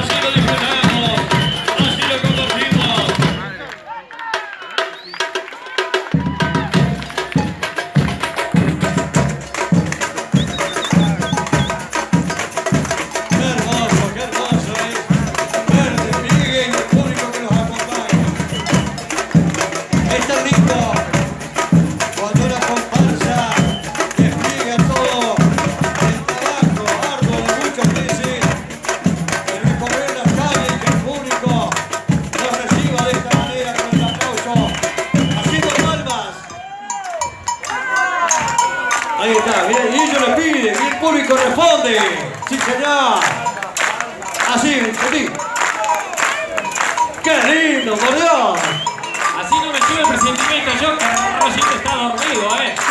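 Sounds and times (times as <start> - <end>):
crowd voices: 0.0 - 52.9
percussion band drumming: 0.0 - 52.9.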